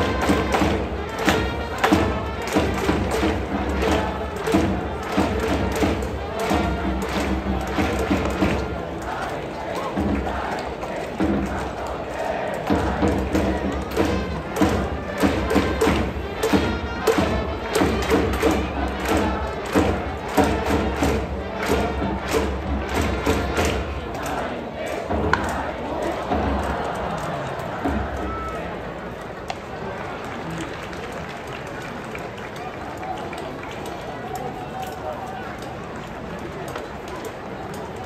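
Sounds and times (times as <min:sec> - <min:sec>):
drumbeats: 0:00.0 - 0:29.1
crowd singing cheer song: 0:00.0 - 0:30.1.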